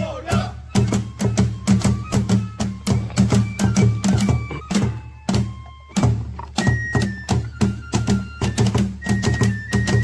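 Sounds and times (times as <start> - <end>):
taiko drums: 0.0 - 10.0.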